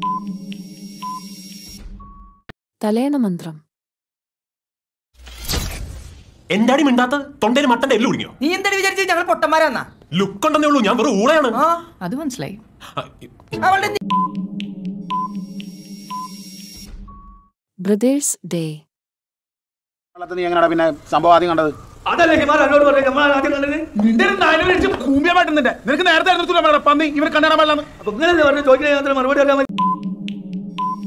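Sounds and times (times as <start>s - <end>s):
short beeps: 29.7s - 30.1s.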